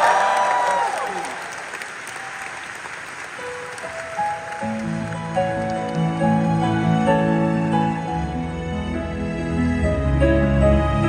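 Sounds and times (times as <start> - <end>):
audience cheering and applauding: 0.0 - 6.9
grand piano: 3.1 - 11.0.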